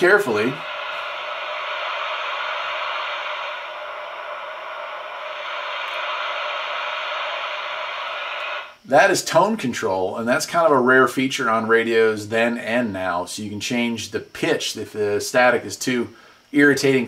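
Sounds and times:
radio static hiss: 0.0s - 17.0s.

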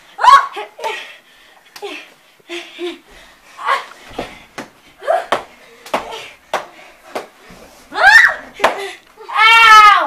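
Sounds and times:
bodies slapping and thumping: 3.9s - 9.0s.

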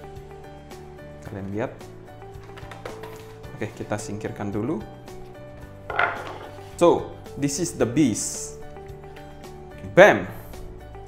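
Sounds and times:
wooden lid knocking on table: 5.9s - 6.6s.

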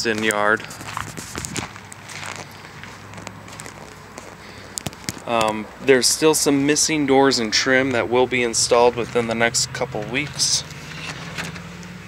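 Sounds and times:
footsteps on concrete: 0.0s - 5.6s
low background noise: 0.0s - 12.0s.

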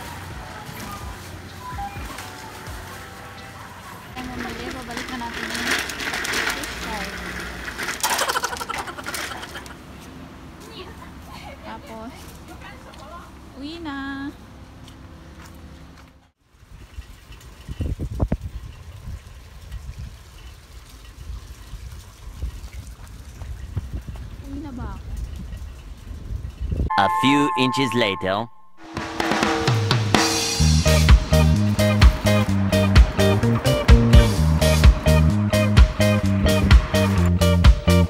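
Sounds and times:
shopping cart rattling: 0.0s - 9.8s
loud metal clatter of carts: 0.0s - 10.0s.

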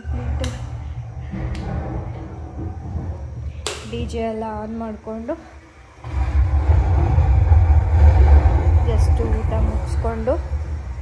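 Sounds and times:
deep bass rumble: 0.0s - 11.0s.

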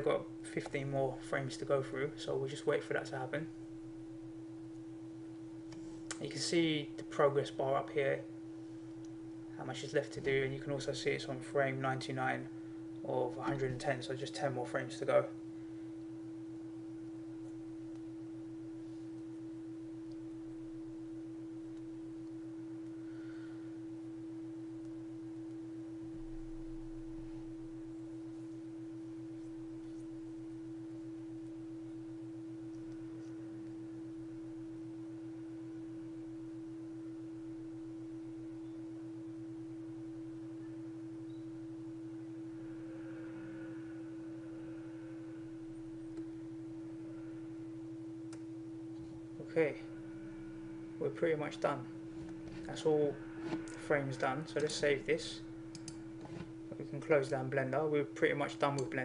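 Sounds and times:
faint steady hum: 0.0s - 59.0s
low buzz: 0.0s - 59.0s.

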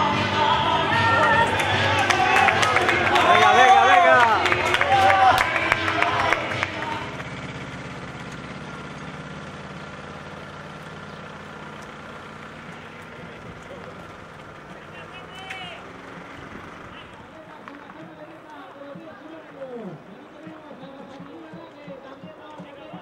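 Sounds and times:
faint voices: 0.0s - 8.2s, 11.3s - 23.0s
vehicle engine humming: 0.0s - 23.0s
short calls: 9.6s - 23.0s.

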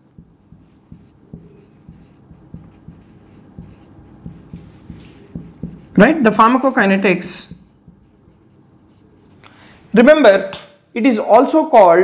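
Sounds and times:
marker writing on whiteboard: 0.0s - 6.2s, 7.3s - 9.5s.

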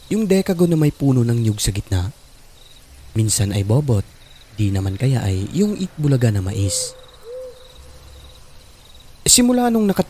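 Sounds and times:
high pulsing insect trill: 0.0s - 10.0s
owl hoot: 6.3s - 8.5s.

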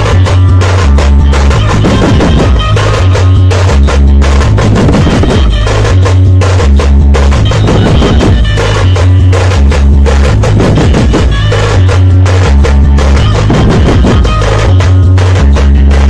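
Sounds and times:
heavy bass line: 0.0s - 16.0s
side drums beaten fast: 0.0s - 16.0s.

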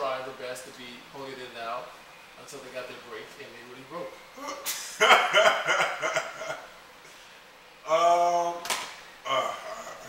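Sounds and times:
men laughing loudly: 4.8s - 6.7s.

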